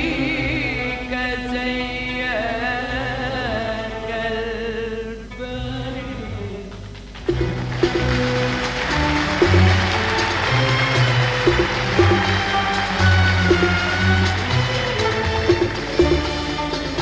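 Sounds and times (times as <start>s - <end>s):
audience applause: 7.2s - 16.0s
string orchestra playing: 7.3s - 17.0s.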